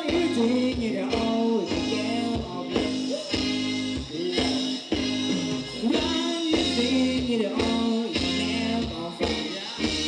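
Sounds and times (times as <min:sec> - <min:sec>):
live dance band playing: 0:00.0 - 0:10.0
person singing: 0:00.0 - 0:10.0.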